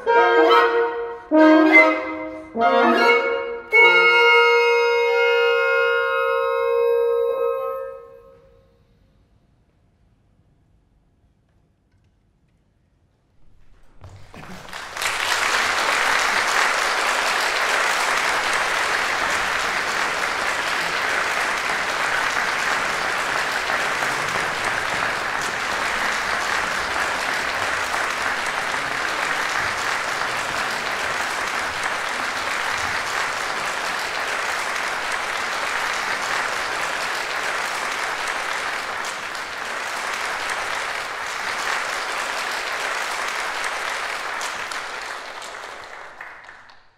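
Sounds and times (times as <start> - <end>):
audience applauding: 13.9 - 46.9.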